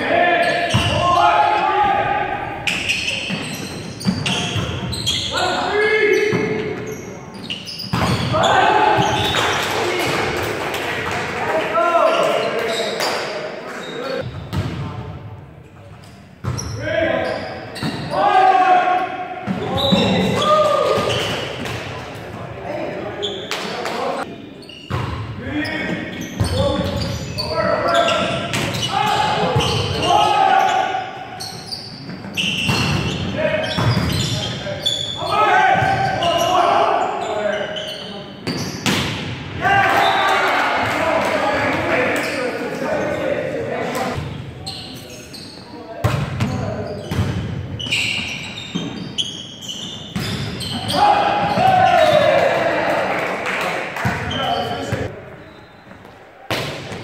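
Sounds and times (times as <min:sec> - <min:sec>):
players shouting: 0:00.0 - 0:02.8, 0:08.2 - 0:10.4, 0:18.0 - 0:21.3, 0:27.4 - 0:31.3, 0:39.6 - 0:43.6, 0:50.6 - 0:55.1.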